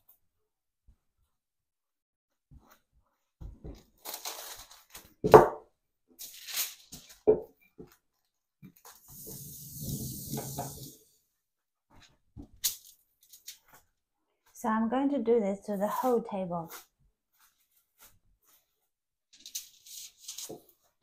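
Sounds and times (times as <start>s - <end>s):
kitchen foil rustling: 3.9s - 5.2s, 6.2s - 7.2s, 12.6s - 13.8s, 18.4s - 21.0s.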